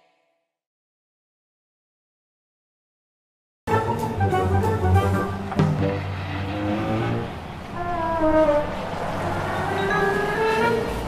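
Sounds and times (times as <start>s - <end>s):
small car engine driving: 5.1s - 11.0s.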